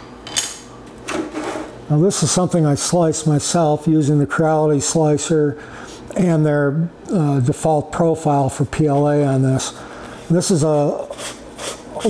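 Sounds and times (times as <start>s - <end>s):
plastic box scraping on workbench: 1.2s - 1.7s.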